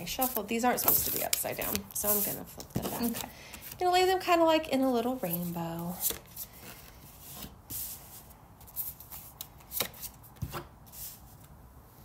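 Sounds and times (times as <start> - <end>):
cards sliding: 8.8 - 11.1.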